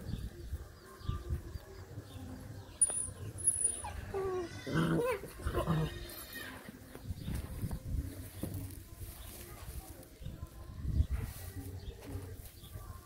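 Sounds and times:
scuffling on gritty ground: 4.7s - 13.0s.

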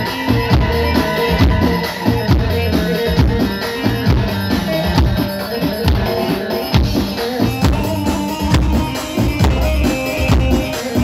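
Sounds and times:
bass drum beats: 0.0s - 11.0s
held melody line: 0.0s - 11.0s.

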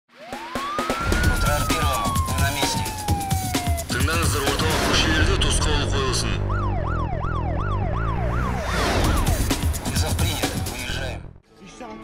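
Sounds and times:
siren wail: 0.1s - 9.4s
theme tune with fast drum beat: 0.1s - 11.3s.

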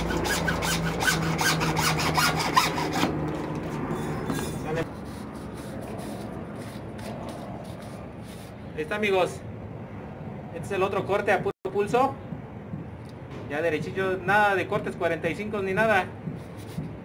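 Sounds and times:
hacksaw cutting plastic pipe: 0.0s - 3.2s.

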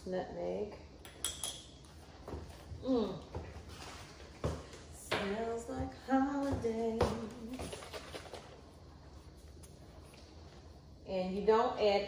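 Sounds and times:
kitchen utensils clinking: 1.1s - 1.8s.

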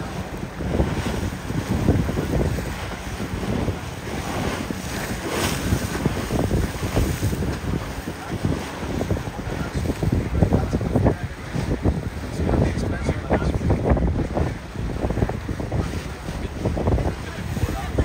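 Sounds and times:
water rushing and slapping: 0.0s - 18.0s
wind buffeting microphone: 0.0s - 18.0s.

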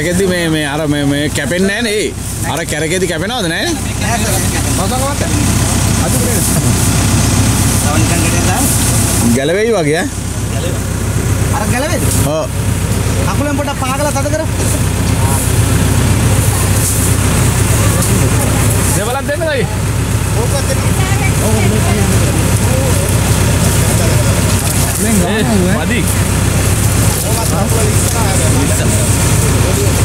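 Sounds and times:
diesel engine idling: 0.0s - 30.0s
faint voices: 0.0s - 30.0s.

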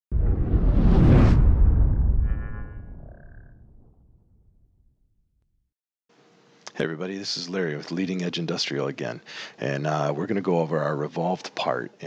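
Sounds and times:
deep boom tail: 0.1s - 4.8s.

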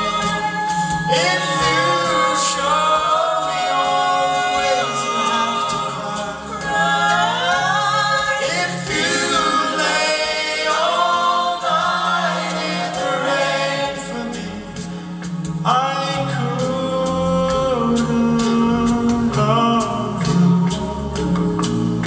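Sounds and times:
a cappella ensemble singing: 0.0s - 22.0s.

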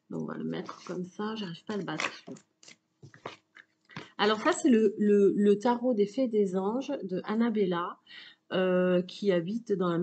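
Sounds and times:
cards being shuffled: 1.7s - 4.1s.

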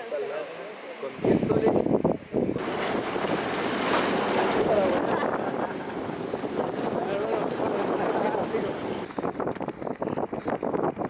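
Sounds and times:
wind buffeting microphone: 1.2s - 11.0s
water rushing along boat hull: 2.6s - 9.6s.

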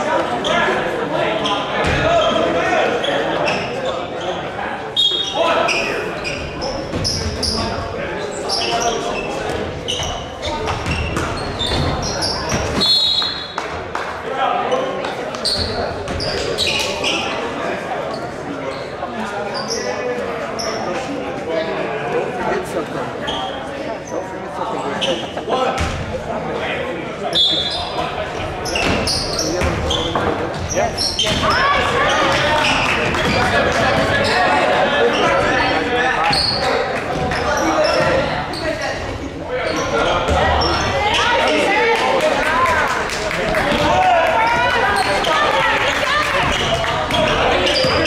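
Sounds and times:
people talking and calling out: 0.0s - 48.0s
sneaker squeaks: 1.3s - 2.4s, 3.0s - 13.7s, 14.7s - 17.4s, 18.1s - 21.7s, 23.2s - 26.0s, 27.3s - 41.6s, 43.8s - 48.0s.

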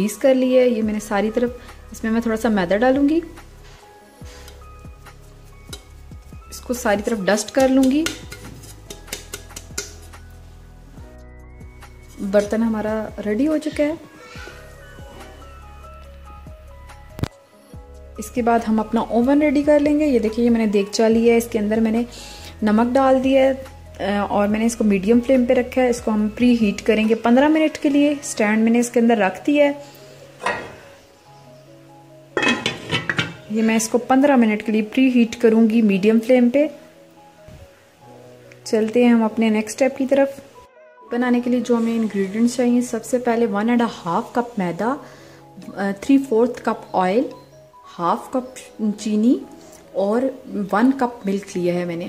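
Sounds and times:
faint background music: 0.0s - 52.0s
light taps on metal cake tin: 7.5s - 10.1s
knock on cookware: 30.4s - 30.9s, 32.4s - 33.5s.

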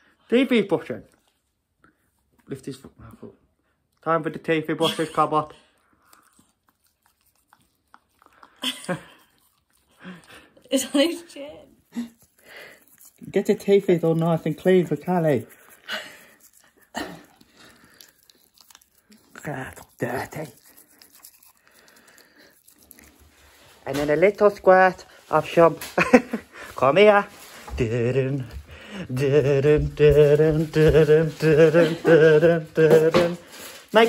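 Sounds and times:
toothbrush scraping dog's teeth: 5.2s - 26.3s
man speaking: 13.2s - 15.5s.

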